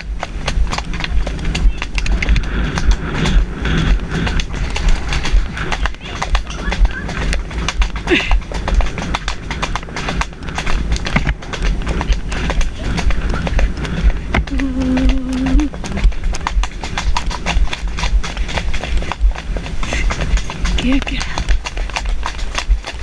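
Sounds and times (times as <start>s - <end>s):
hoofbeats on dirt: 0.0s - 23.0s
wind rumbling on microphone: 0.0s - 23.0s.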